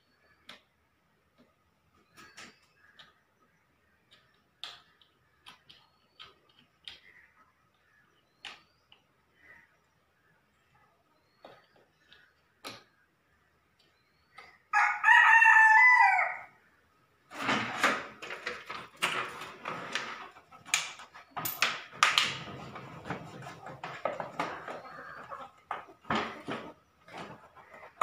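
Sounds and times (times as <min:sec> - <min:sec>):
rooster crowing: 0:14.7 - 0:16.6
hand tools clicking and knocking: 0:17.3 - 0:28.0.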